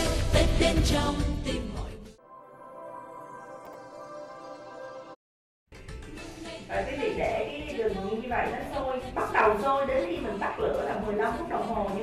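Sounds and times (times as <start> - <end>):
woman speaking: 6.7 - 12.0.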